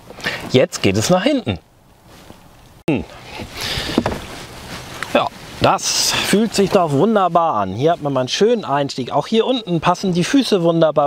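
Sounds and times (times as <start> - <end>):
clothing rustling: 3.2 - 6.9
short knock: 3.9 - 4.3.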